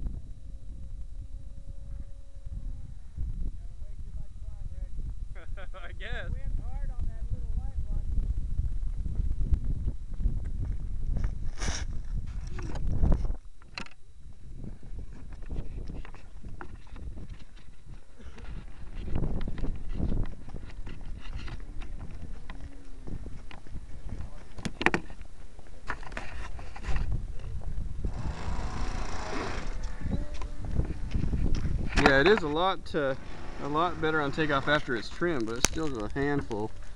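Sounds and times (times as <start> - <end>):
microphone rubbing against clothing: 7.4 - 13.4, 14.3 - 35.4.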